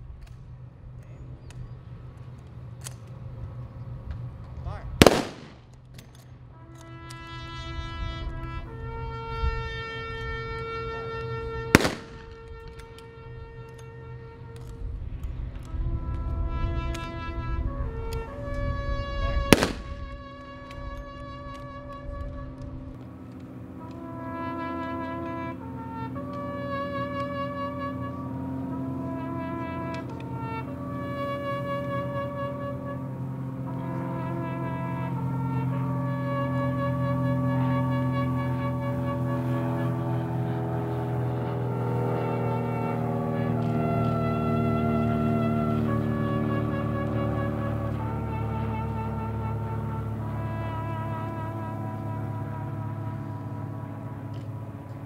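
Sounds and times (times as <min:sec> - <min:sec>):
bugle playing sustained notes: 0:00.0 - 0:55.0
rifle volleys: 0:05.0 - 0:07.2, 0:11.7 - 0:13.0, 0:19.5 - 0:20.8.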